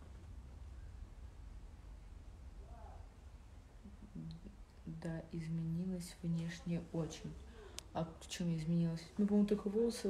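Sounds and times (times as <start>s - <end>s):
low hum: 0.0s - 10.0s
woman speaking softly: 3.9s - 10.0s.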